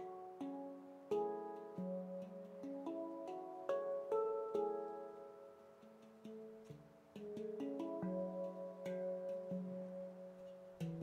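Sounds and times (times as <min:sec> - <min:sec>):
handpan notes ringing: 0:00.0 - 0:11.0.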